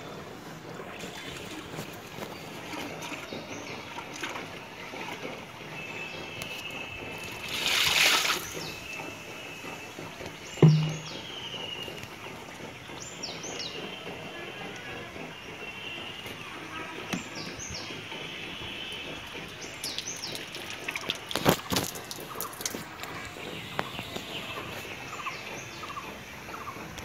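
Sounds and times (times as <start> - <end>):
outdoor background noise: 0.0 - 27.0
birds chirping: 8.4 - 14.1.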